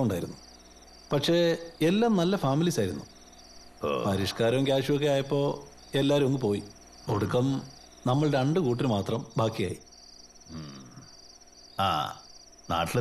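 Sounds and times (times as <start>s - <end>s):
crickets chirping: 0.0s - 13.0s
man talking: 3.8s - 9.8s, 11.8s - 13.0s.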